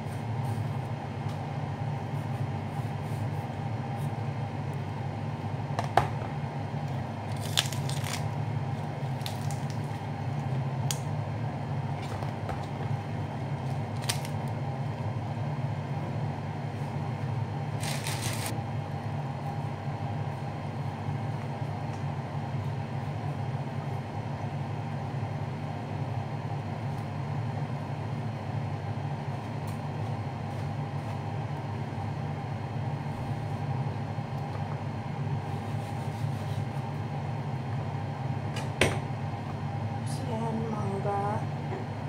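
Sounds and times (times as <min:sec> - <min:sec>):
low mechanical hum: 0:00.0 - 0:42.0.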